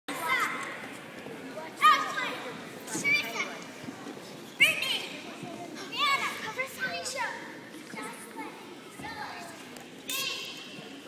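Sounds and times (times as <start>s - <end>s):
girls' voices in a crowd: 0.1s - 11.0s.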